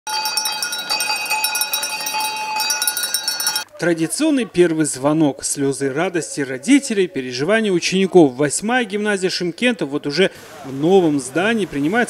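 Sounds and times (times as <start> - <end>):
brass hand bell ringing rapidly: 0.1 - 3.6.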